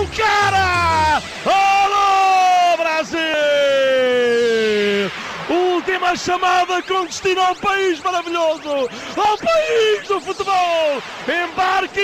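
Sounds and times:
commentator shouting goal call: 0.0 - 4.8, 5.5 - 12.0.

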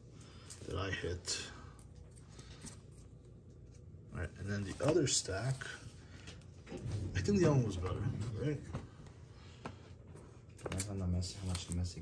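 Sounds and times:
card handling ticks and rubbing: 10.5 - 12.0.

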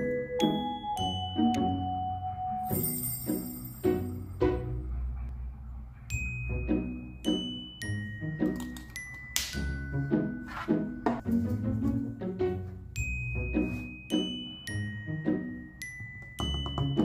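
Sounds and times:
ringing bell-like tones: 0.0 - 4.4
gentle background music: 0.0 - 17.0.

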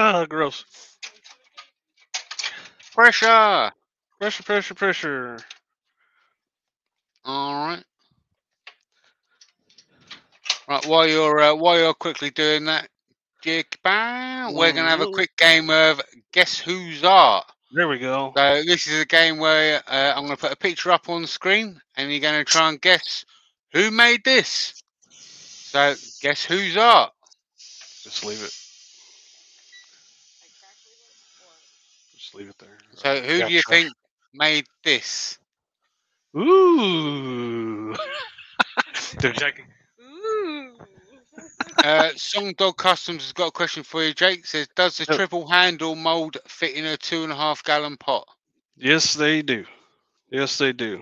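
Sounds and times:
faint voice: 0.0 - 0.8, 2.5 - 5.5, 7.3 - 7.8, 10.7 - 12.8, 13.5 - 23.2, 23.8 - 24.8, 25.7 - 27.1, 28.1 - 28.5, 32.2 - 35.4, 36.4 - 48.2, 48.8 - 49.7, 50.4 - 51.0
faint steady hiss: 23.8 - 35.4.

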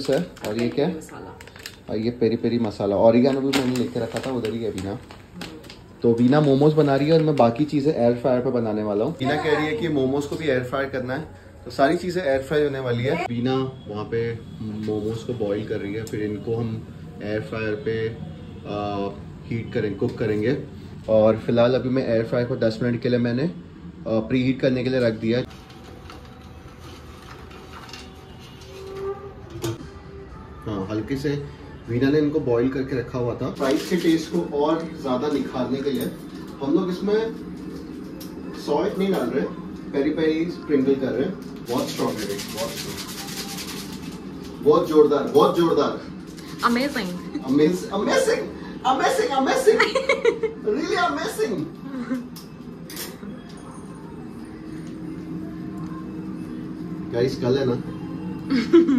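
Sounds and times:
packet crinkling: 0.0 - 7.9
air fryer fan whirring: 0.0 - 29.9, 30.6 - 58.9
steady low hum: 43.8 - 58.9.

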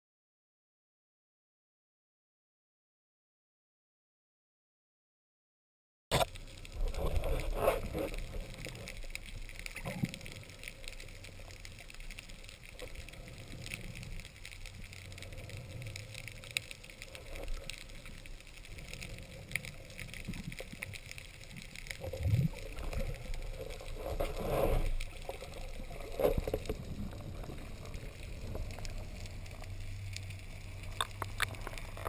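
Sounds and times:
small clicks and crackles: 6.1 - 32.0
underwater rumble of moving water: 6.3 - 32.0.

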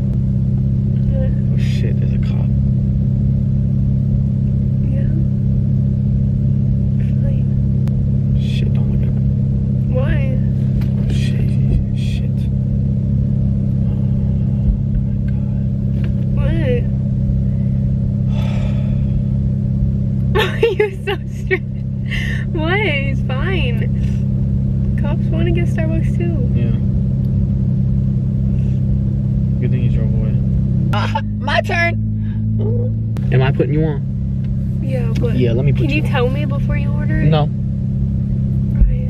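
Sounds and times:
car engine rumble inside cabin: 0.0 - 39.0.

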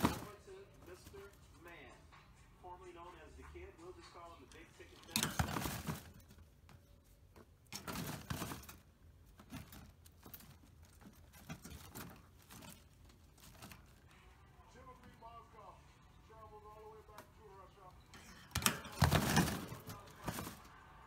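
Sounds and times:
rabbit rustling in wire cage: 0.0 - 1.9, 4.4 - 21.0.

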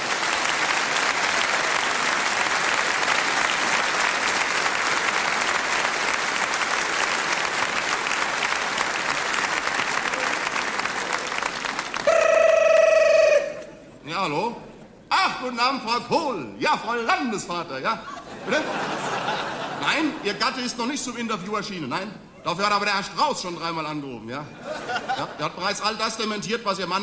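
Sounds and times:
audience applauding: 0.0 - 13.7.

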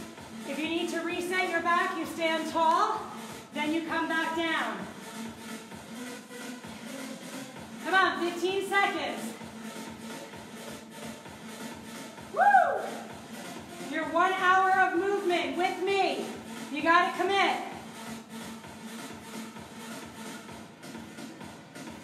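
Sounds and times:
workout music with quick beat: 0.0 - 22.0.

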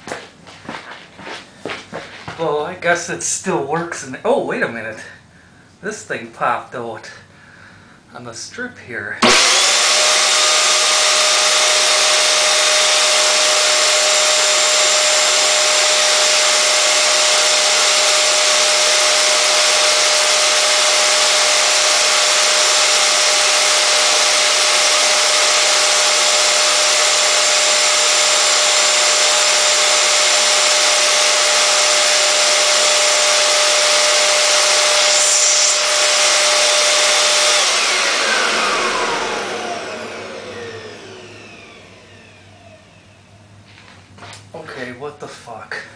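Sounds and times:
vacuum cleaner motor whining: 9.2 - 43.8.

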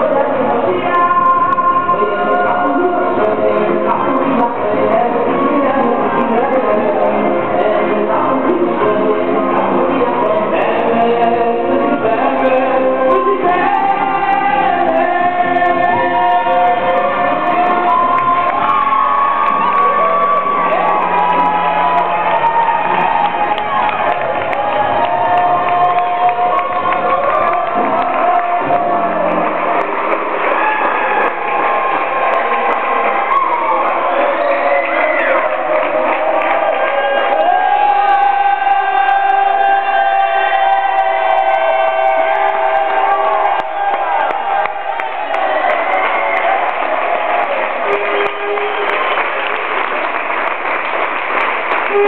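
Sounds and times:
crowd cheering and singing: 0.0 - 52.0
party music: 0.0 - 52.0.

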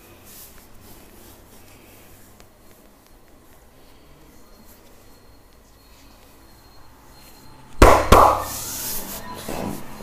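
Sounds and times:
hand slapping bare skin: 7.8 - 8.5.

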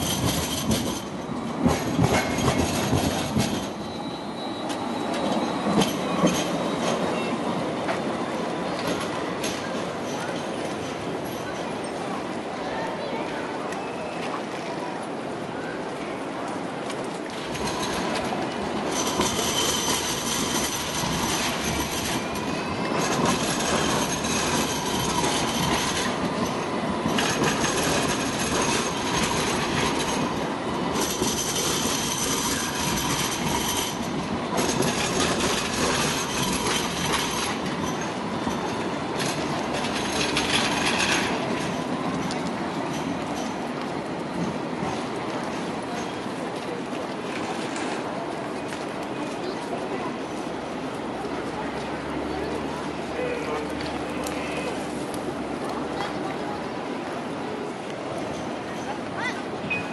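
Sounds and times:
tram wheels squealing: 0.0 - 14.9, 15.6 - 59.9
tram rolling rumble: 0.0 - 59.9.

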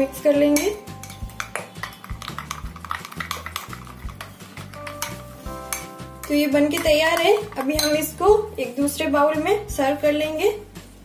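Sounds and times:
background music: 0.0 - 11.0
metal spoon clinking on glass bowl: 0.5 - 8.2.

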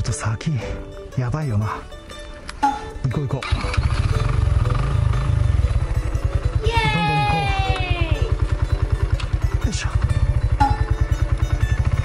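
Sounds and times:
motorcycle engine running: 3.4 - 12.0.

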